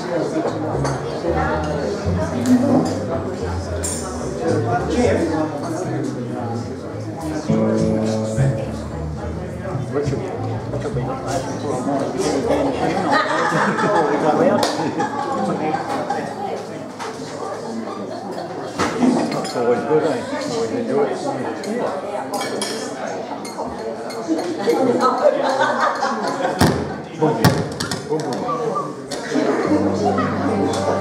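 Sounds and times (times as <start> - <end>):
murmur of people talking: 0.0 - 31.0
people chatting: 0.0 - 31.0
steady low tone: 0.7 - 5.4, 7.4 - 11.7, 29.7 - 31.0.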